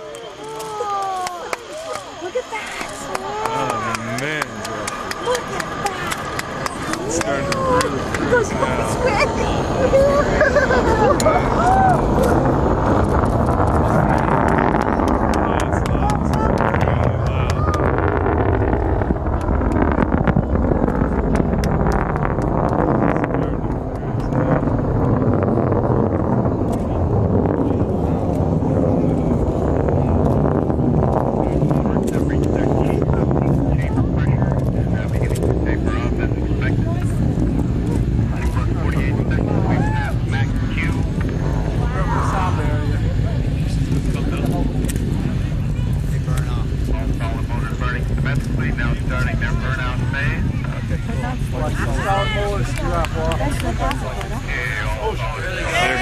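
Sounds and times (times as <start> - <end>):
rocket engine rumble and crackling: 0.0 - 56.0.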